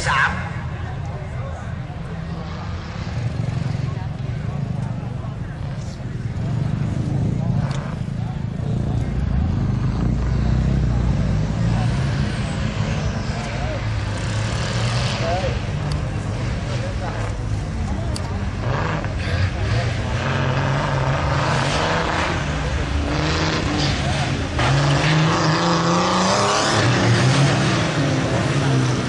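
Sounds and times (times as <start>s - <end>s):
faint voices: 0.0s - 29.0s
truck engine rumbling: 0.0s - 29.0s.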